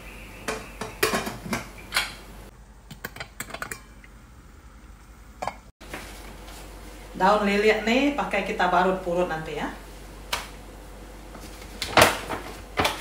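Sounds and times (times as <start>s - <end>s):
pots and utensils clinking: 0.4s - 2.2s, 3.0s - 4.1s, 5.4s - 5.7s.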